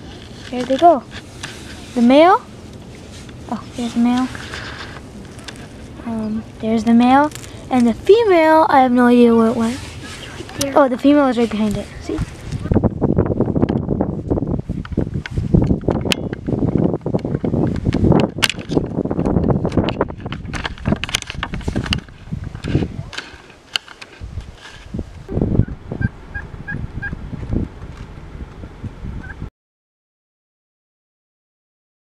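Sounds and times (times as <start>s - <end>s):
turkeys calling and gobbling: 25.6s - 27.2s.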